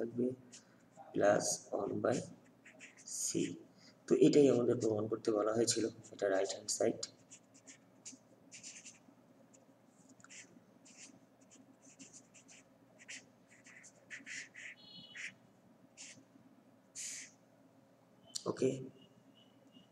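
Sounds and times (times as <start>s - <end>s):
pen scratching on paper: 2.1s - 3.6s, 7.1s - 9.0s, 10.3s - 15.4s, 16.0s - 16.2s, 17.0s - 17.3s
high pen squeak: 13.1s - 15.4s, 17.0s - 17.4s.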